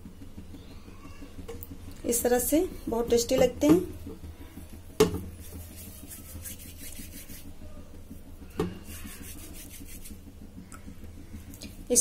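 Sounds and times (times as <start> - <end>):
hands rubbing dough: 4.2 - 10.4.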